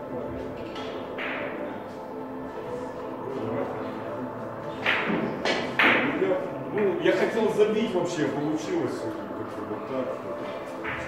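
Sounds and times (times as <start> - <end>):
men's voices: 3.0 - 11.0
billiard balls clacking: 4.7 - 6.2.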